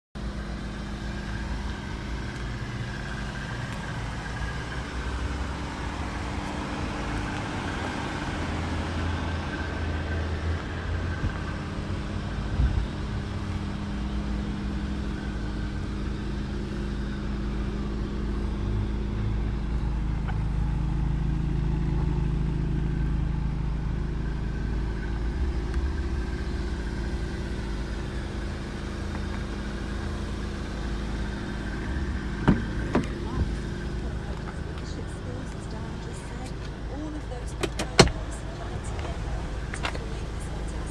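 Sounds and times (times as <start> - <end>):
car engine idling: 0.2 - 40.9.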